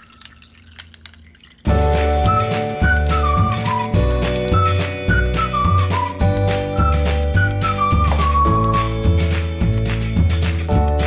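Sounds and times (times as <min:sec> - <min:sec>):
lemonade pouring into glass of ice: 0:00.0 - 0:05.5
drips: 0:00.0 - 0:09.4
music with whistled melody: 0:01.7 - 0:11.0.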